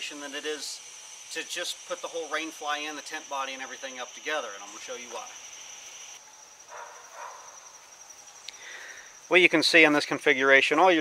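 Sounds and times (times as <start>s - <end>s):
insect trill: 0.0s - 11.0s.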